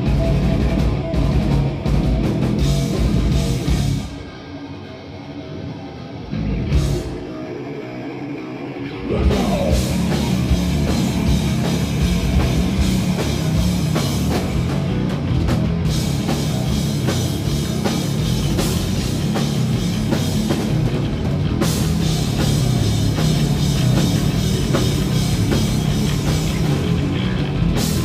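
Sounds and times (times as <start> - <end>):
heavy metal band playing live: 0.0 - 28.0.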